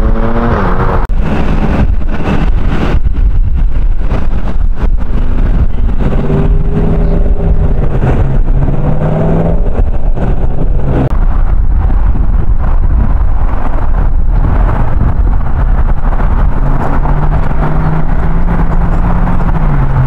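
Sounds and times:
car engine accelerating: 0.0 - 20.0
dense low traffic rumble: 0.0 - 20.0
vehicle engine running steadily: 0.0 - 20.0.

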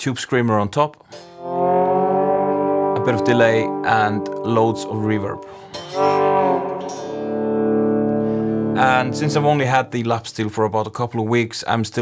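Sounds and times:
lap steel guitar chord ringing: 1.2 - 10.1.

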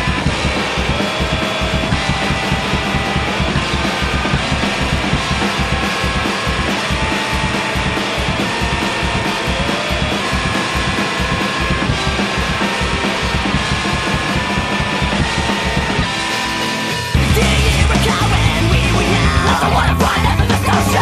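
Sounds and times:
drum kit playing: 0.0 - 21.0
rock music: 0.0 - 21.0.

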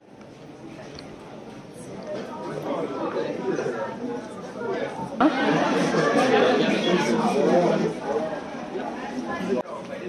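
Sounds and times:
indistinct chatter of people: 0.0 - 10.0
loud voices: 3.0 - 10.0.

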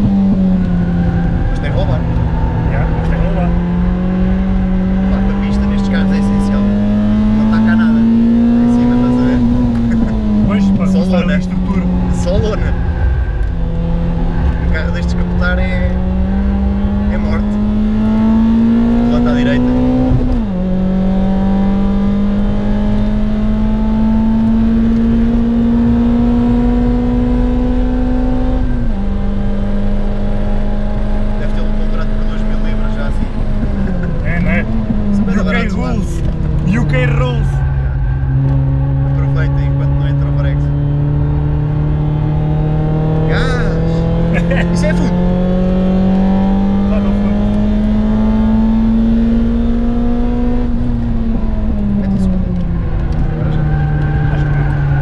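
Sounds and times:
race car engine from inside cabin: 0.0 - 55.0.

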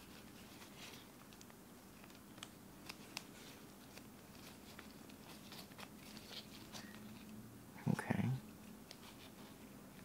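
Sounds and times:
glove rustling: 0.0 - 7.3.

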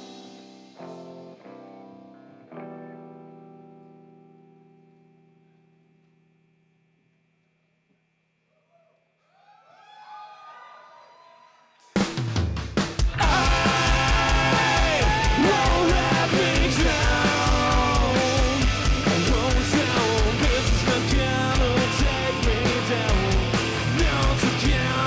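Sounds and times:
rock band with drums: 0.0 - 2.1, 11.8 - 25.0
electric guitar chords ringing: 0.0 - 6.6, 13.1 - 25.0
bending guitar notes: 0.8 - 5.6.

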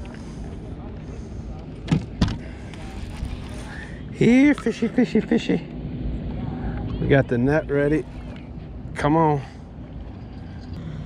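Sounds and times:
low rumble of wind and water: 0.0 - 11.0.

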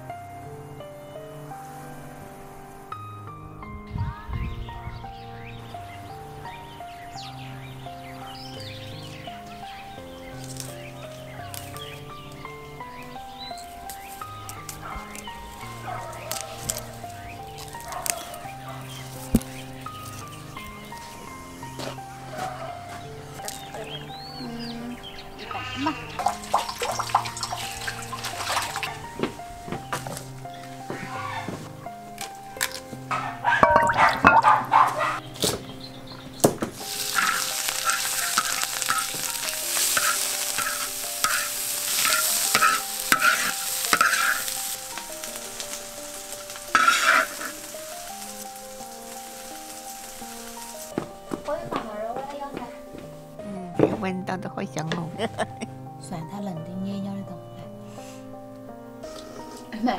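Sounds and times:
soft background music: 0.0 - 59.9
food sizzling in a wok: 6.7 - 22.4, 26.0 - 29.4, 36.7 - 50.9
stirring strokes in a wok: 36.8 - 50.9.

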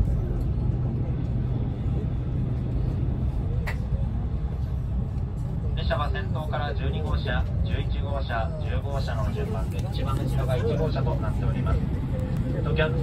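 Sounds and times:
train running low rumble: 0.0 - 13.0.

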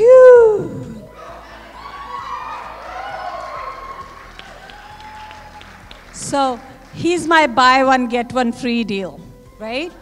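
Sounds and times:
crowd cheering: 1.1 - 6.9.

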